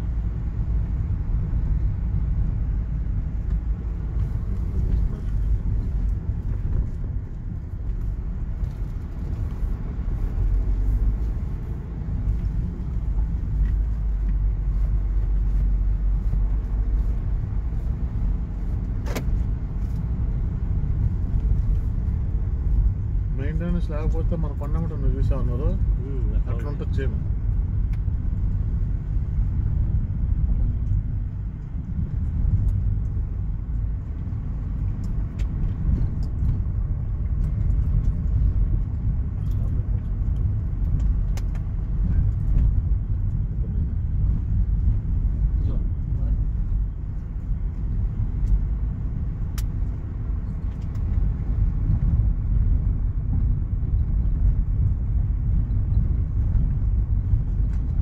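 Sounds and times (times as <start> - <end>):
road rumble inside car: 0.0 - 58.0.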